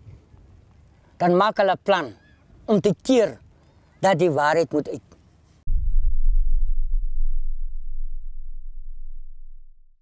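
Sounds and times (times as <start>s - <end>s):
deep sub-bass boom: 5.7s - 10.0s.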